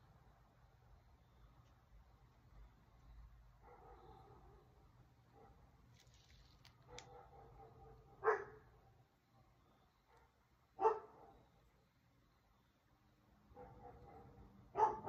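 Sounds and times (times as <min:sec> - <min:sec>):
dog barking: 0:03.6 - 0:05.6, 0:06.8 - 0:08.8, 0:10.1 - 0:11.4, 0:13.5 - 0:15.0.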